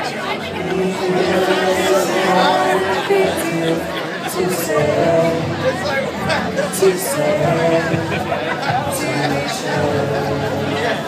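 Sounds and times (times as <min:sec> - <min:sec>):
crowd talking and chattering: 0:00.0 - 0:11.0.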